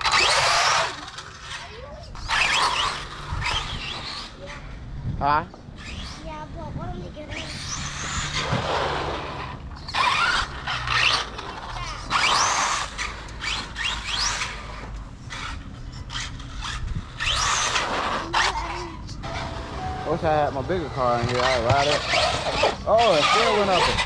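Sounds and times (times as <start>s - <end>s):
electric motor whining: 0.0s - 4.7s, 7.2s - 24.0s
steady low rumble: 1.9s - 22.9s
tyre noise: 7.2s - 24.0s.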